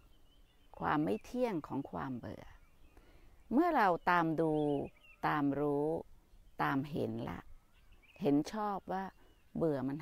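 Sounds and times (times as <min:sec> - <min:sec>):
woman speaking calmly: 0:00.7 - 0:02.6, 0:03.4 - 0:07.5, 0:08.2 - 0:10.0.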